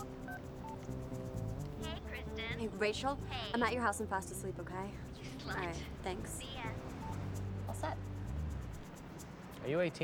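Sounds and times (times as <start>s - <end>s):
phone keypad beeps: 0.0s - 0.9s
background music: 0.0s - 10.0s.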